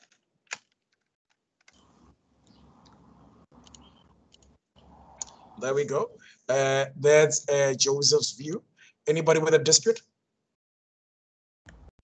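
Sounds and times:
low steady background noise: 0:01.7 - 0:10.0.

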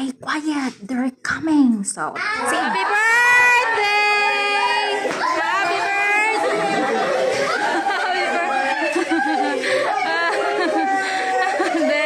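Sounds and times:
people chattering excitedly: 0:02.2 - 0:12.0.

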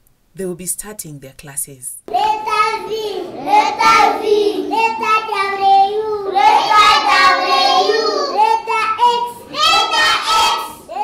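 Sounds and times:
young children singing: 0:02.1 - 0:11.0.

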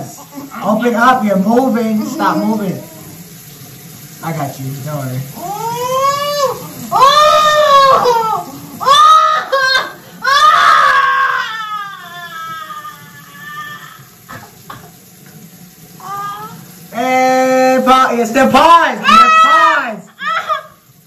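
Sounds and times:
woman shrieking with laughter: 0:05.6 - 0:12.5, 0:19.0 - 0:20.8.

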